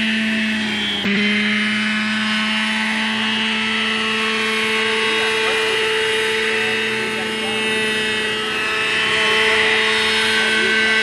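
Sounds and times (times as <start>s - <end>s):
model helicopter engine droning: 0.0s - 11.0s.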